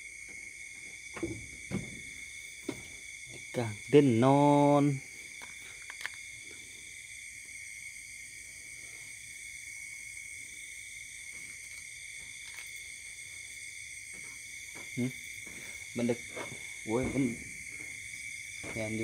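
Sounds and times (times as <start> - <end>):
insects trilling: 0.0 - 19.0.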